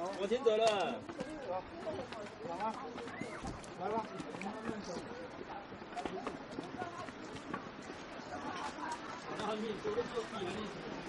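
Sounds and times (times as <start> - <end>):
footsteps on stone trail: 0.0 - 11.0
voices nearby: 0.0 - 11.0.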